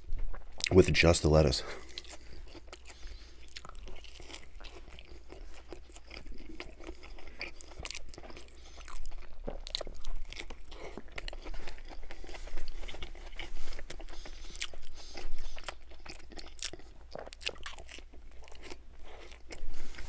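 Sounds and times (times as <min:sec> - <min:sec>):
chewing and crunching: 0:00.2 - 0:20.0.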